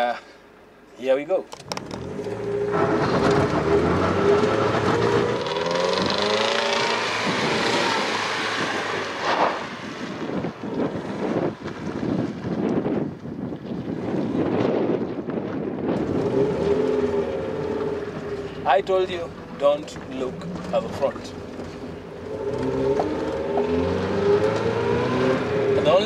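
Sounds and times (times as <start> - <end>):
car engine revving hard: 2.0 - 10.2, 16.0 - 18.6, 22.2 - 26.0
tyres on gravel: 15.4 - 24.7.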